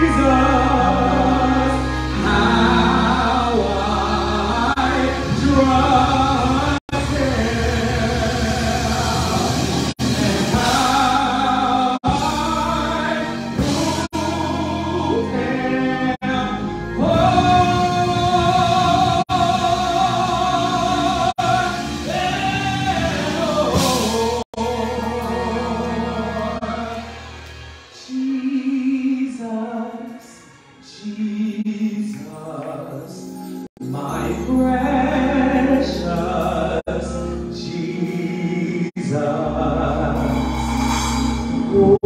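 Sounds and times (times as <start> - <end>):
man singing gospel into microphone: 0.0 - 27.3, 27.9 - 40.6.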